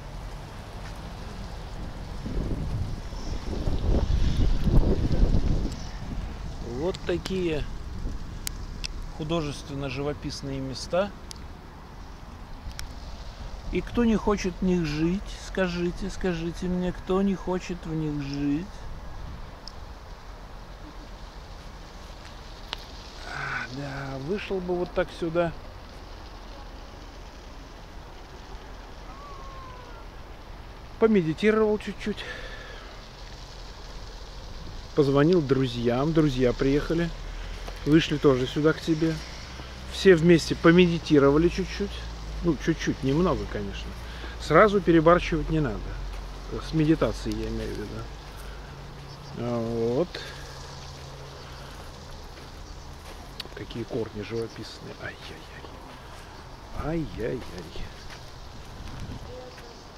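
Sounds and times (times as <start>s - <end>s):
wind buffeting microphone: 1.3s - 9.2s, 55.7s - 59.6s.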